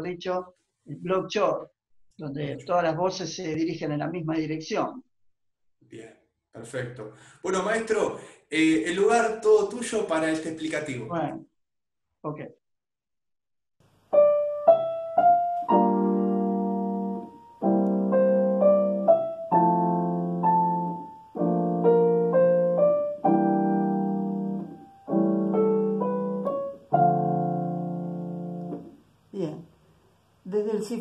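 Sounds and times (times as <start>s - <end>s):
digital piano jazz: 14.1s - 29.0s.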